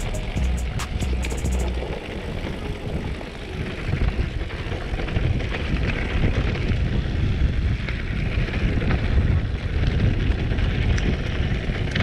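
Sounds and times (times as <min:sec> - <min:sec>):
background music with hi-hat beat: 0:00.0 - 0:01.8
bike tyres rolling on gravel: 0:01.6 - 0:12.0.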